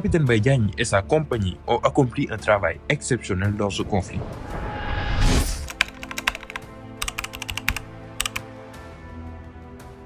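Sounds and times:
quiet background music: 0:00.0 - 0:10.0
keyboard typing clicks: 0:05.6 - 0:08.4.

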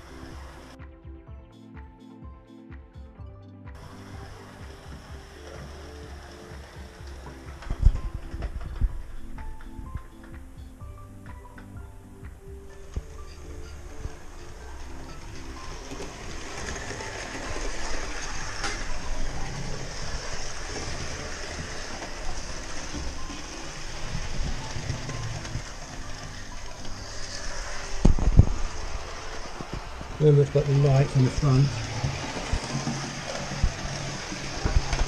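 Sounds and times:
model train running on track: 0:00.0 - 0:00.8, 0:03.8 - 0:10.4, 0:12.6 - 0:35.0
faint music: 0:00.0 - 0:35.0.

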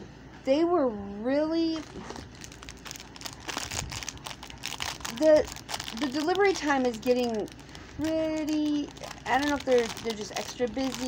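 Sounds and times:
packaging crinkling: 0:01.8 - 0:11.0.

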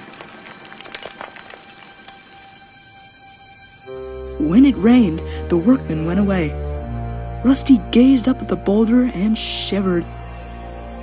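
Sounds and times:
stones clattering down rock: 0:00.0 - 0:02.3
faint sustained music notes: 0:00.0 - 0:11.0.

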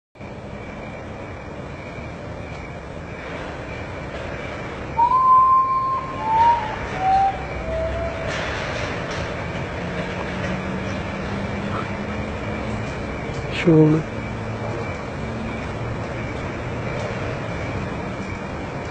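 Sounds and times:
bird whistling mournful notes: 0:04.9 - 0:08.6.

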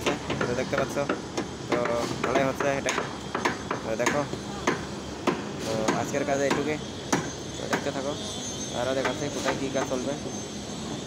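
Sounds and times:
hammer blows on formwork: 0:00.0 - 0:08.0.

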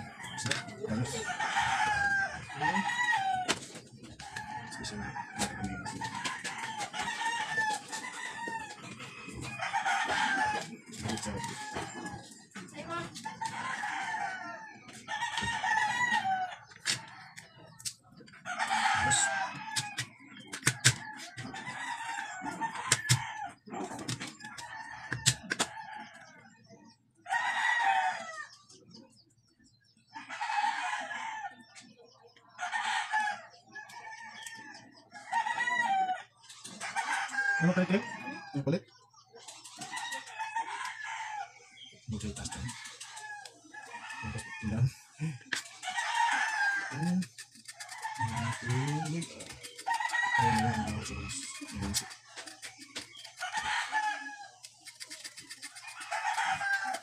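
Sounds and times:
roosters crowing: 0:00.0 - 0:17.7, 0:18.3 - 0:26.4, 0:27.2 - 0:28.6, 0:30.2 - 0:31.7, 0:32.6 - 0:38.9, 0:39.6 - 0:57.0
hens clucking: 0:00.0 - 0:26.0, 0:42.0 - 0:57.0.

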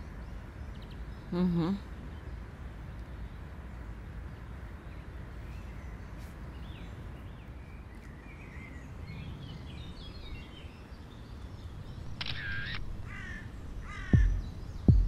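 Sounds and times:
birds chirping: 0:00.0 - 0:15.0
bird harsh calls: 0:12.2 - 0:15.0
deep thumps of song beat: 0:14.1 - 0:15.0.

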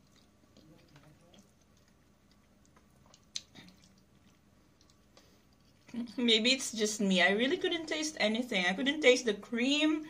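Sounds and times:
person chewing: 0:00.0 - 0:06.2.

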